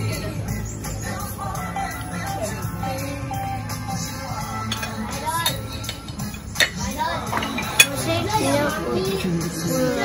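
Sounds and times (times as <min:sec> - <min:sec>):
background music: 0:00.0 - 0:10.0
voices: 0:00.0 - 0:10.0
cutlery clinking on a plate: 0:04.6 - 0:08.1.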